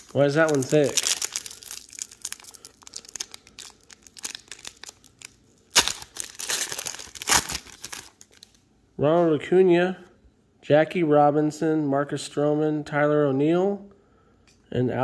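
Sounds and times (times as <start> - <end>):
wrapper crinkling and crackling: 0.0 - 8.6
wrapper ripping: 0.0 - 8.6.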